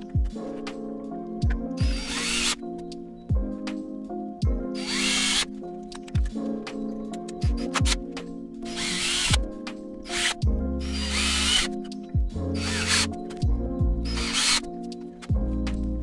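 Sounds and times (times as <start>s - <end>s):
backing music with steady beat: 0.0s - 16.0s
cordless drill running: 1.8s - 2.6s, 4.8s - 5.5s, 8.7s - 9.4s, 10.1s - 11.7s, 12.6s - 13.1s, 14.1s - 14.6s.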